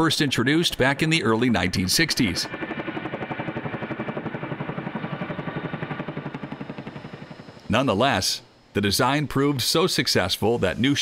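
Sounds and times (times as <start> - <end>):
helicopter rotors beating: 0.0 - 11.0.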